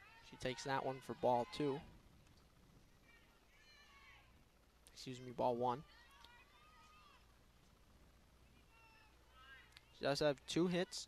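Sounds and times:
ballpark ambience: 0.0 - 11.0.

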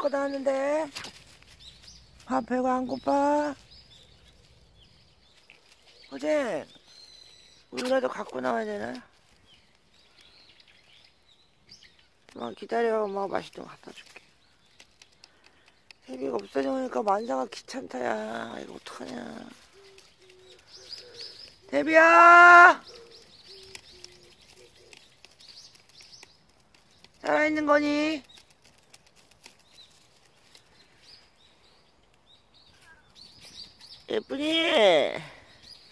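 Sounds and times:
faint bird chirps: 0.0 - 8.5, 13.8 - 35.9.

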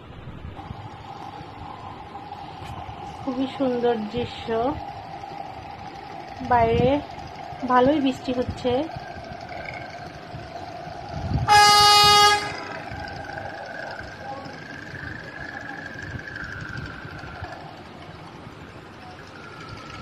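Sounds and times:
engine drone: 0.0 - 20.0
wind: 0.0 - 20.0
boat horn blast: 11.4 - 12.9.

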